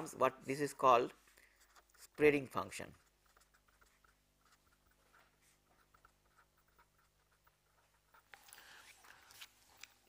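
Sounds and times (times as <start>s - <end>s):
scratchy writing strokes: 1.1s - 10.0s.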